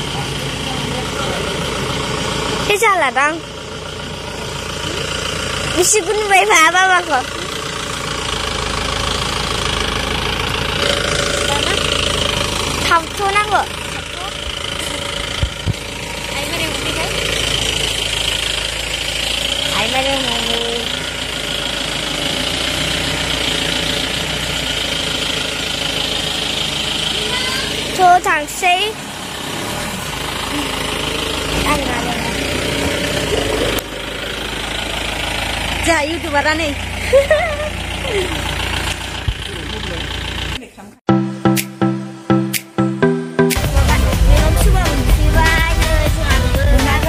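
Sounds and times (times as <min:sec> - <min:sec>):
engine idling: 0:00.0 - 0:41.0, 0:43.5 - 0:47.0
low thump: 0:15.3 - 0:15.9.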